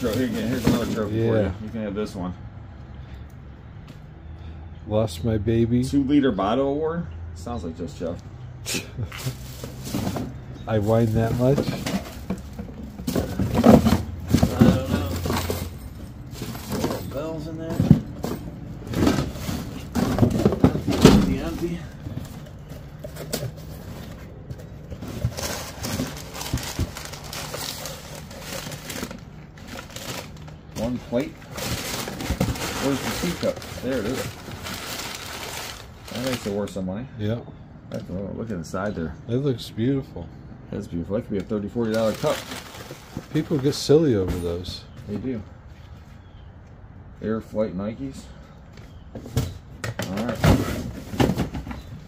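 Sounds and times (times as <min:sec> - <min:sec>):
paper and cardboard rustling: 0:00.0 - 0:01.4, 0:09.0 - 0:36.6, 0:41.8 - 0:45.2, 0:49.2 - 0:52.0.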